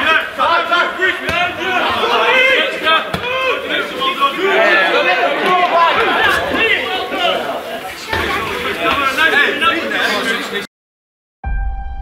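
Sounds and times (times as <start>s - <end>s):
men shouting and chattering: 0.0s - 10.7s.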